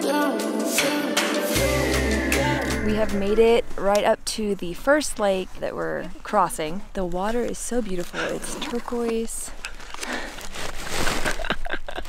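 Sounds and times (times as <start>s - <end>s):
plastic chip bag crinkling: 8.6s - 11.6s.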